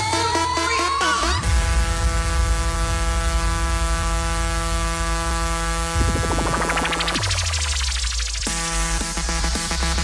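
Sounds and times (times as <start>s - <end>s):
deep bass rumble: 1.4s - 10.0s
loud held electronic tone: 6.0s - 8.0s.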